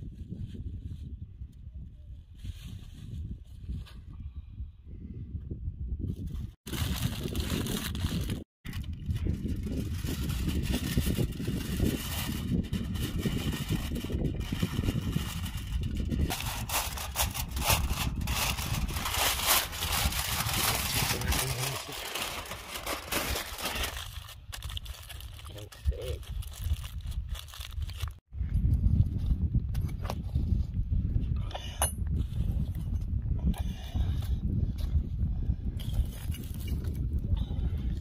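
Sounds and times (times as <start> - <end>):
aluminium foil crinkling: 6.7 - 28.2
steady low rumble: 6.7 - 38.0.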